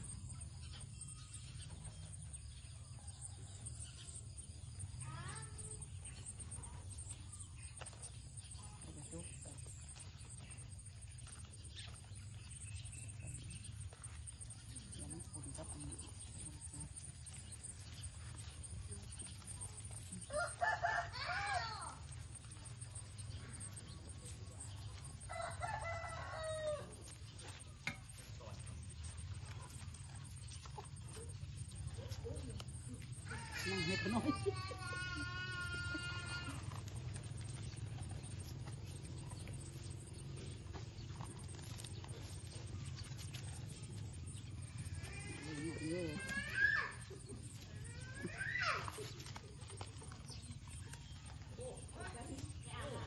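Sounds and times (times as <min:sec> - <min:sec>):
rooster crowing: 0:20.3 - 0:21.9, 0:25.3 - 0:27.0.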